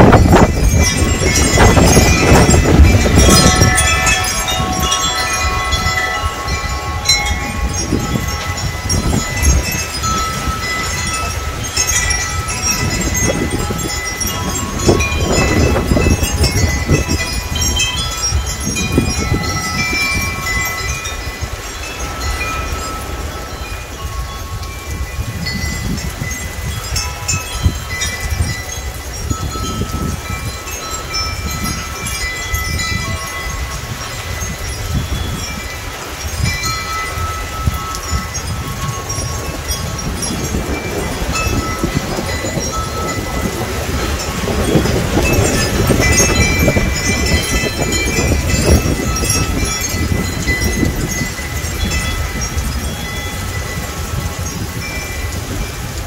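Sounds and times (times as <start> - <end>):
wind chimes ringing: 0.0 - 56.0.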